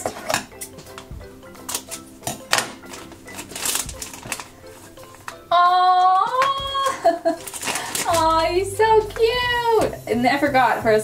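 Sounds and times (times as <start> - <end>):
soft background music: 0.0 - 11.0
plastic packet crinkling and tearing: 1.6 - 8.5.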